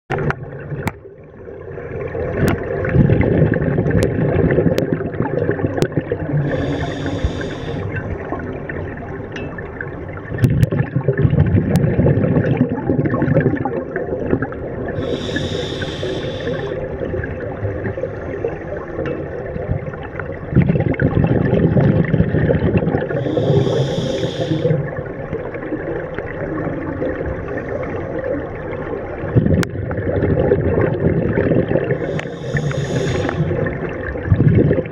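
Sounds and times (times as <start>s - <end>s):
gurgling exhaled bubbles: 0.1s - 34.9s
hissing regulator inhalations: 6.4s - 8.0s, 15.0s - 16.8s, 23.2s - 24.9s, 32.0s - 33.6s.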